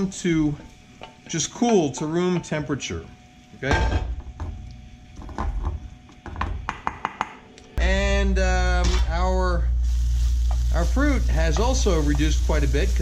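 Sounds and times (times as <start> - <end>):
low hum: 7.5 - 13.0
person speaking: 7.8 - 13.0.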